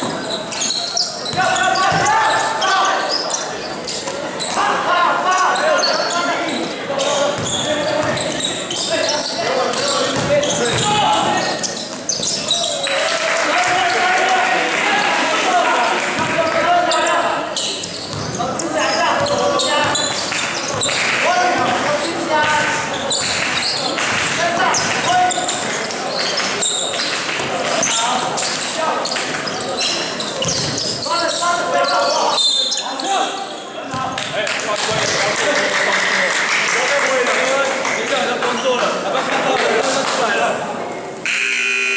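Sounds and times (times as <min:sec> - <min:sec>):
people shouting and talking: 0:00.0 - 0:41.9
basketball bouncing on gym court: 0:01.3 - 0:02.1, 0:07.4 - 0:08.4, 0:09.7 - 0:11.0, 0:18.0 - 0:18.6, 0:30.4 - 0:30.9.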